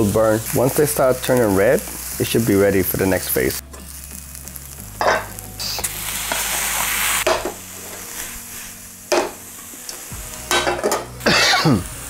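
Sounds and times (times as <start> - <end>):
onion sizzling in frying pan: 0.0 - 12.0.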